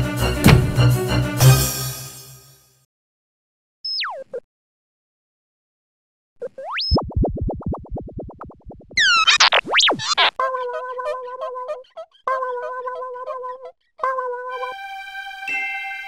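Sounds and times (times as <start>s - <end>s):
warbling electronic bleeps: 3.9s - 4.4s, 6.4s - 10.4s
low boing-like pulses: 6.7s - 10.3s.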